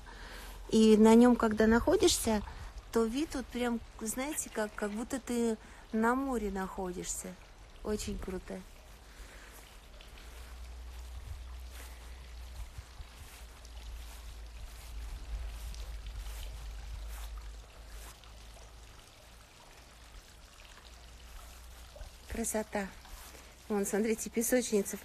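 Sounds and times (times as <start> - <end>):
fountain water trickling: 0.0 - 25.0
wind rumble on microphone: 10.2 - 18.0.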